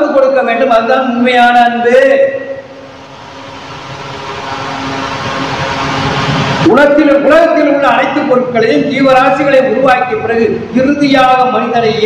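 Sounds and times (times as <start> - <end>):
faint hum: 0.0 - 12.0
steady rushing noise: 2.5 - 10.1.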